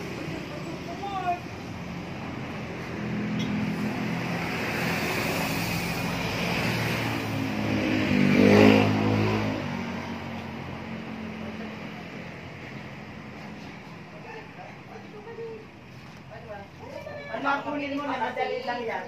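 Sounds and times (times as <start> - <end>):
vehicle engine passing by: 0.0 - 14.2.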